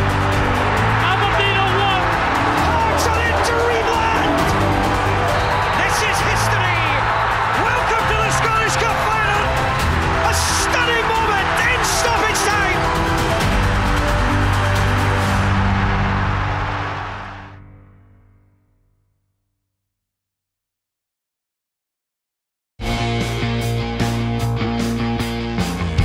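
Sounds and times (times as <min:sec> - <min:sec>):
dramatic theme music: 0:00.0 - 0:18.6.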